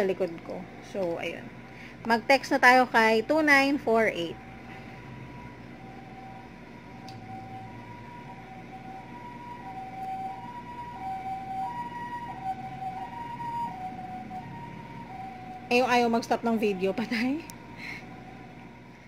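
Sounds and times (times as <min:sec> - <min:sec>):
two-tone siren: 0:03.1 - 0:19.0.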